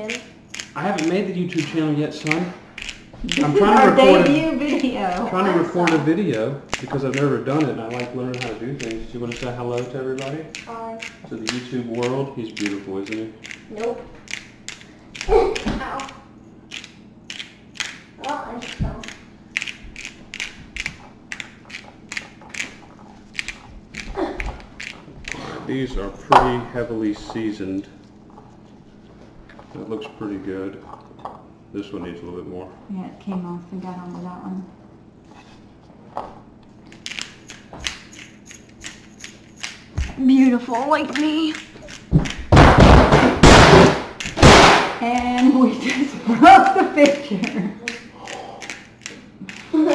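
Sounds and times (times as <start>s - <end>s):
seasoning grinder crunching: 0.0s - 25.4s
picture frame crashing to floor: 42.4s - 45.0s.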